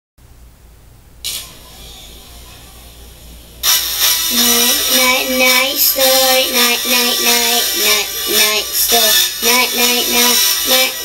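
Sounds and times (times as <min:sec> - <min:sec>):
low hiss: 0:00.2 - 0:11.0
person singing with music: 0:01.3 - 0:11.0.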